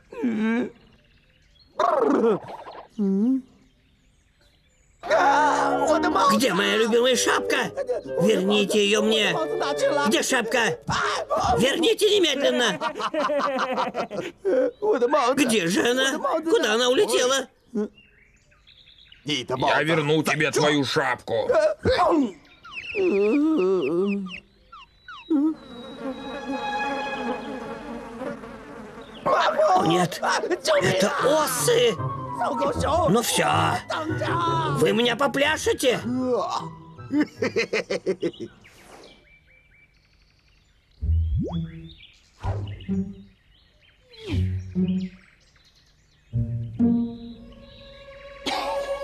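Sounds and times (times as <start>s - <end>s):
faint bird chirps: 0.0s - 5.6s, 22.1s - 27.7s, 38.2s - 49.0s
low comic sound effects: 25.3s - 30.1s, 41.0s - 43.3s, 44.2s - 45.2s
cartoon wasp swarm buzzing: 25.4s - 30.4s
short falling blips: 41.0s - 43.3s
wavering warbling tone: 41.0s - 43.3s.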